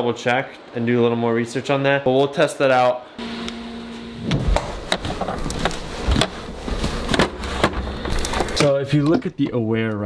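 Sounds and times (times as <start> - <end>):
low steady hum: 3.0 - 9.7.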